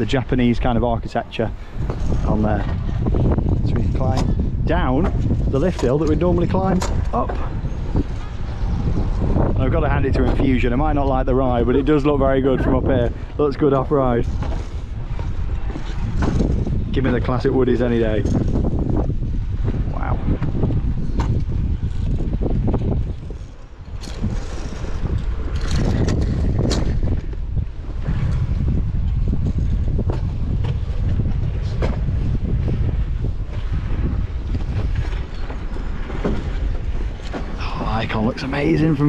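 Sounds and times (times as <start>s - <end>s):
wind rumbling on microphone: 0.0s - 39.0s.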